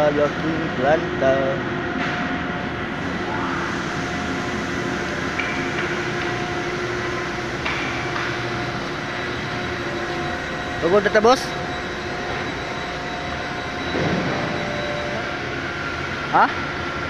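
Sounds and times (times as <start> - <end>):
factory machinery humming: 0.0 - 17.0.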